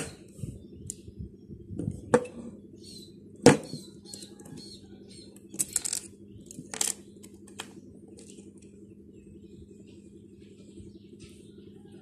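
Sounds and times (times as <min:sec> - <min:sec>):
small metal parts clicking: 0:05.4 - 0:07.6.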